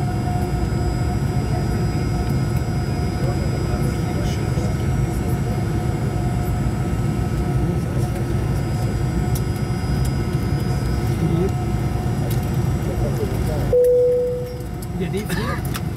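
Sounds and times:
airliner cabin rumble: 0:00.0 - 0:15.9.

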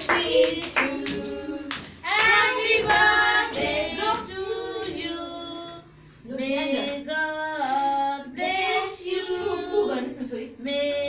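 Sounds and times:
woman and children singing: 0:00.0 - 0:11.0.

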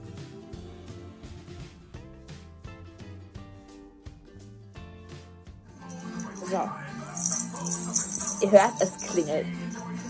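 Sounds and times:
jingle bell ringing: 0:05.8 - 0:10.0.

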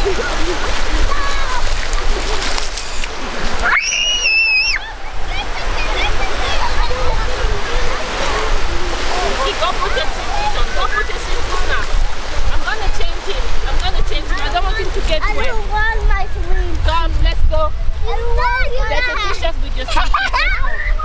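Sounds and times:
children's voices and shouts: 0:00.0 - 0:02.4, 0:03.5 - 0:16.9, 0:17.8 - 0:21.0
waves splashing in surf: 0:00.0 - 0:21.0
wind on microphone: 0:00.0 - 0:21.0
child squealing: 0:03.6 - 0:05.0, 0:20.4 - 0:21.0.

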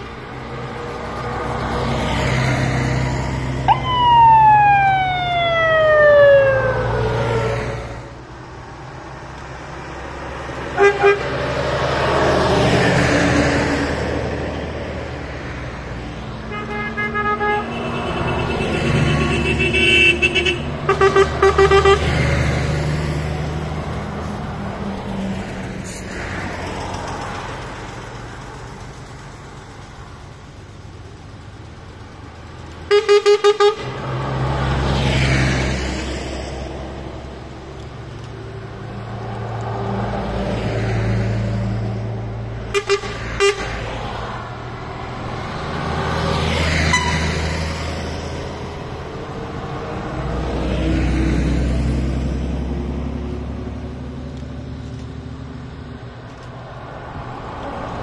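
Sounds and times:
diesel buses driving past: 0:00.0 - 0:58.0
siren winding down: 0:03.1 - 0:07.9
horn toots: 0:10.7 - 0:11.4, 0:16.5 - 0:22.5, 0:32.9 - 0:34.0, 0:42.7 - 0:44.0, 0:46.7 - 0:47.4.

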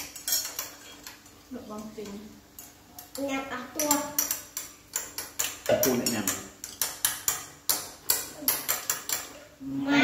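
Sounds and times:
chopsticks clinking on plates: 0:00.0 - 0:01.3, 0:02.0 - 0:09.5.

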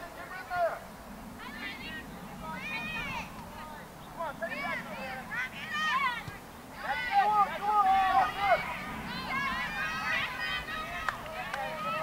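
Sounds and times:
distant high-pitched shouted calls: 0:04.0 - 0:12.0.

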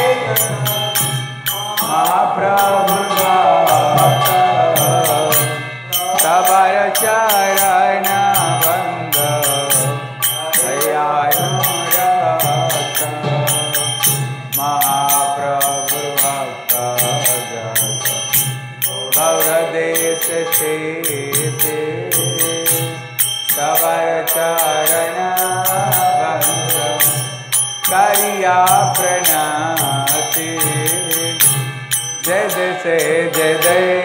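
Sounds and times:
hand cymbals beating: 0:00.0 - 0:34.0.

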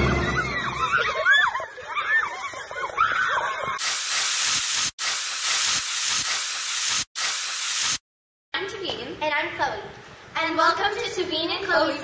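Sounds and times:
loud static hiss: 0:03.8 - 0:08.0.

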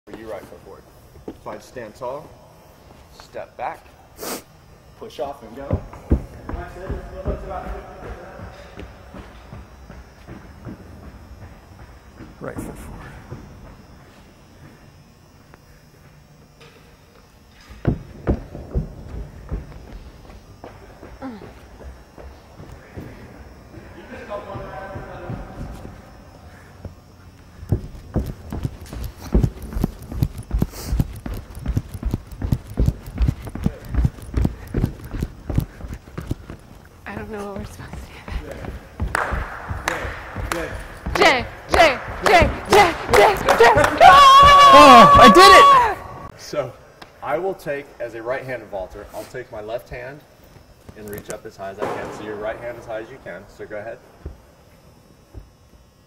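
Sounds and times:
running footsteps on hard floor: 0:05.6 - 0:14.8, 0:17.7 - 0:23.8, 0:24.4 - 0:46.0
shuffling and scuffs: 0:24.6 - 0:44.1
indistinct voices: 0:39.4 - 0:46.3.

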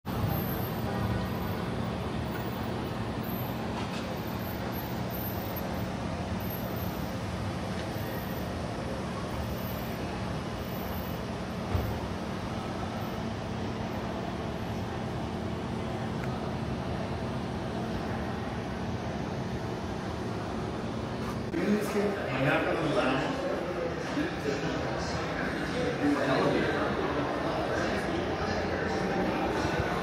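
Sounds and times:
traffic and idling vehicles: 0:00.0 - 0:30.0.

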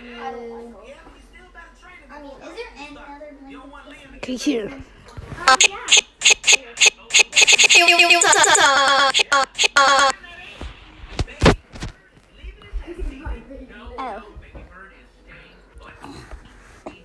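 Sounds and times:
stuttering voice sample: 0:05.5 - 0:10.1.

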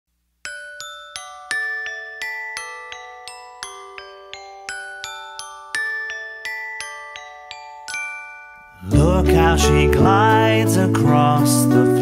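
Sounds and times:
glockenspiel melody: 0:00.4 - 0:12.0.

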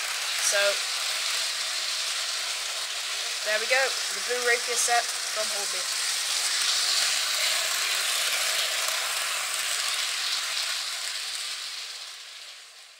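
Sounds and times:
model train running on track: 0:00.0 - 0:11.5.

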